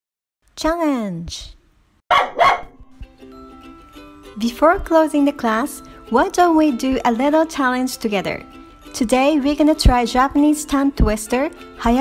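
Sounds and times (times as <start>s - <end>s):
dog barking: 2.1s - 2.9s
light background music: 2.2s - 12.0s.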